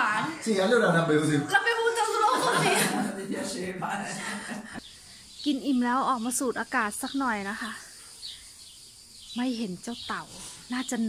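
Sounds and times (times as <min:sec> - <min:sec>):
woman speaking: 0:01.5 - 0:03.1, 0:05.5 - 0:07.9, 0:09.4 - 0:11.0.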